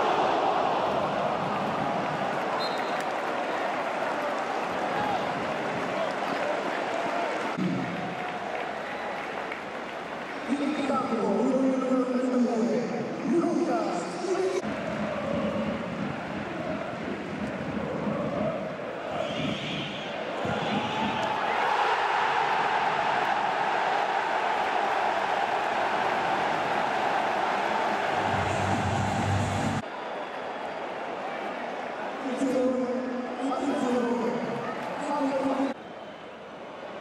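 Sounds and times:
stadium crowd cheering: 0:00.0 - 0:11.5, 0:14.5 - 0:37.0.

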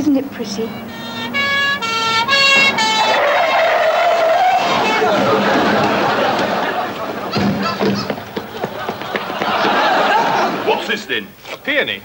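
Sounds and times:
car tyres screeching: 0:00.0 - 0:10.8
two-tone siren: 0:00.4 - 0:06.3.

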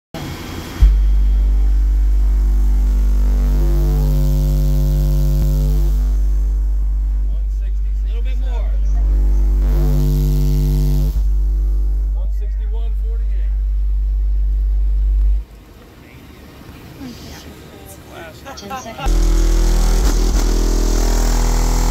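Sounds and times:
loud deep bass tone: 0:00.2 - 0:15.5, 0:19.1 - 0:21.9.

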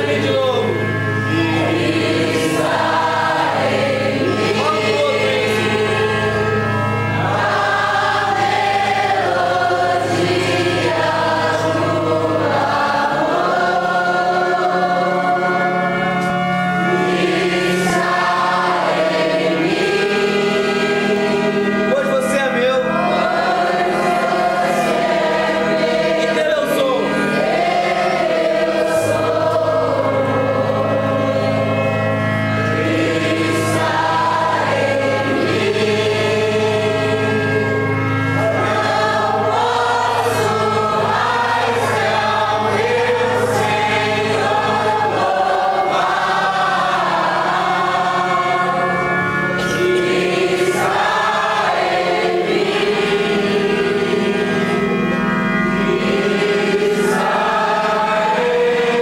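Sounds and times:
congregation singing: 0:00.0 - 0:59.0.

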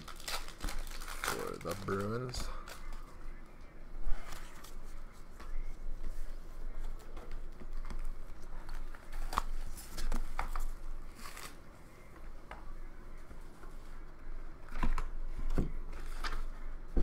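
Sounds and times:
card and cardboard rustling: 0:00.0 - 0:03.3, 0:04.1 - 0:14.0, 0:14.6 - 0:17.0.

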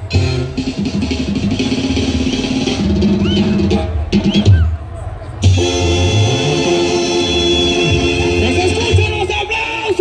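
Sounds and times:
brass band with tuba playing: 0:00.0 - 0:10.0.

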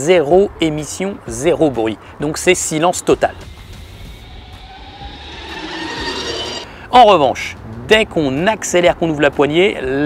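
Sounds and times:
electric scooter passing: 0:03.4 - 0:06.7.

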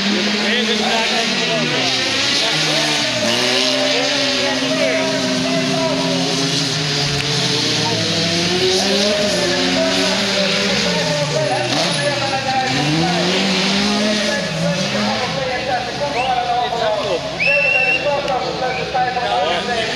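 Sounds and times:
race car engines revving: 0:00.0 - 0:19.9.

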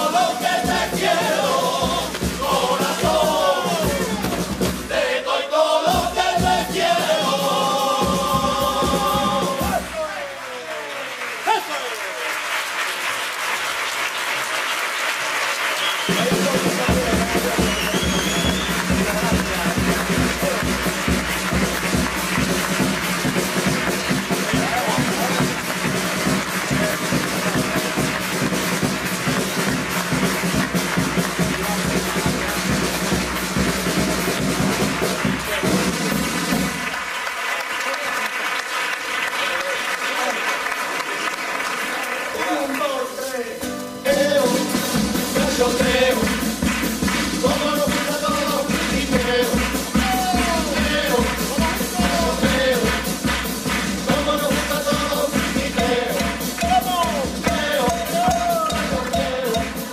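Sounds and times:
music with steady beat: 0:00.0 - 0:05.0, 0:16.4 - 0:37.0, 0:43.7 - 0:59.9
audience applauding: 0:08.6 - 0:43.6, 0:44.2 - 0:59.9.

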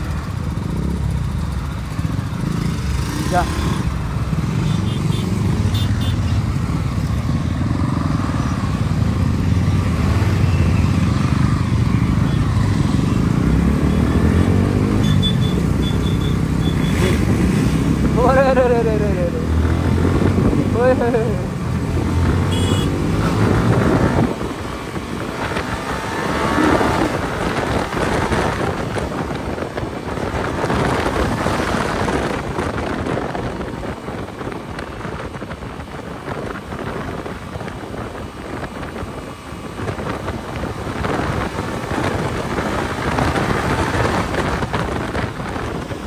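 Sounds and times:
other motorcycles running: 0:00.0 - 0:46.0.

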